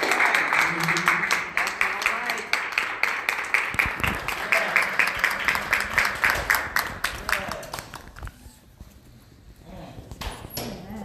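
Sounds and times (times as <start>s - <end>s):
congregation clapping in rhythm: 0.0s - 8.2s.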